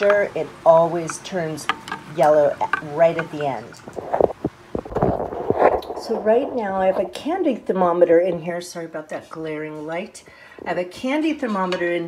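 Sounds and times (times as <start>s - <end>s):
kitchen utensils knocking and clicking: 1.0s - 3.9s.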